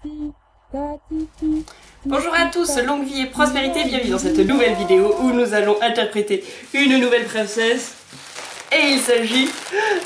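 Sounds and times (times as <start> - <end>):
electronic jingle tones: 0.8 - 5.5.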